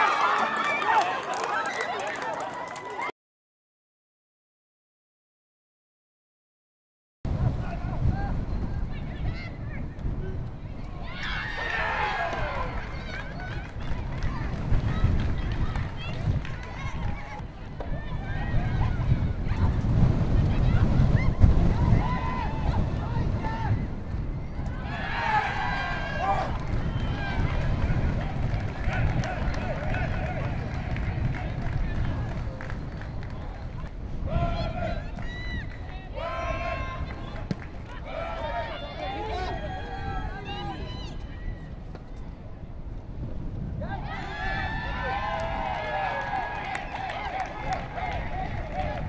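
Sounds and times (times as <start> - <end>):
wind rumble on microphone: 7.3 - 49.0.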